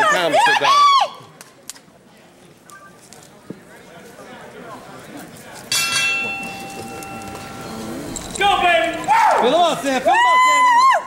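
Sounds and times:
crowd chatter: 0.0s - 11.0s
boxing bell ringing: 5.7s - 9.1s.

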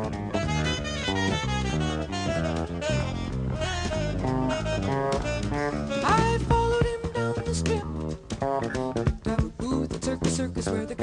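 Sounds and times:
bass: 0.0s - 11.0s
drum kit: 0.0s - 11.0s
saxophone quick runs: 0.3s - 7.8s.

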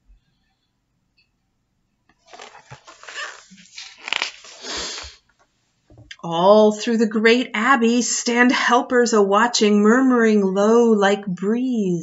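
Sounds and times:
book pages rustling: 2.1s - 5.4s
soft thumps of a book: 2.2s - 4.4s.

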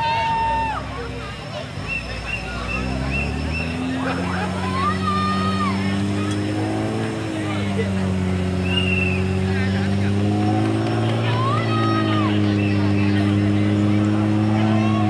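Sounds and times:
crowd voices and shouts: 0.0s - 15.0s
off-road vehicle engine under load: 0.0s - 15.0s.

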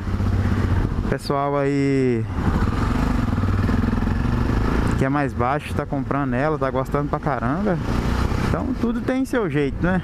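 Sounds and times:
motorcycle engine running: 2.2s - 9.2s.

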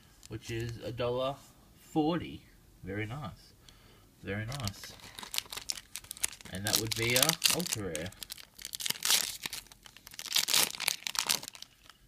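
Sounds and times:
foil wrapper crinkling and tearing: 4.5s - 12.0s.

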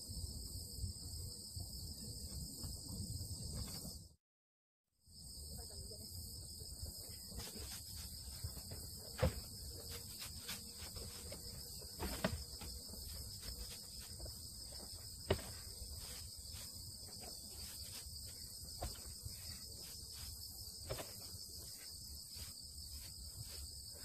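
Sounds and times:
insects trilling: 5.0s - 24.0s
plastic rake scraping ground: 15.3s - 23.7s.

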